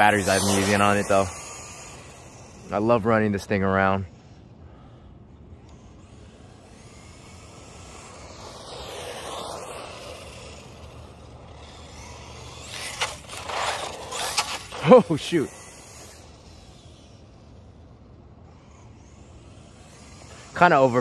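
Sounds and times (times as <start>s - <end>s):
rc truck motor and tyres: 0.0s - 21.0s.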